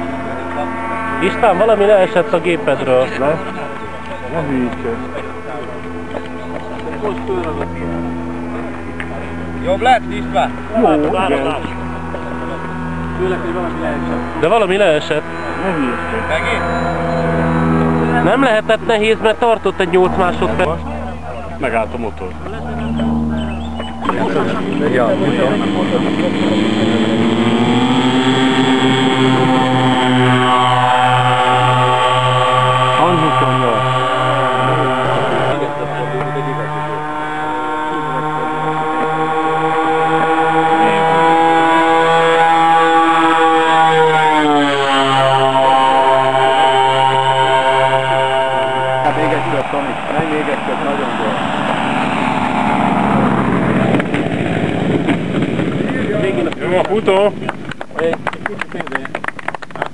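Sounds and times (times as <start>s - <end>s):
model airplane engines and propellers: 0.0s - 59.9s.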